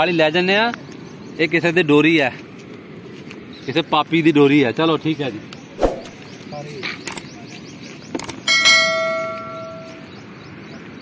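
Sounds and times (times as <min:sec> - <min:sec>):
bell struck: 0:08.5 - 0:10.0.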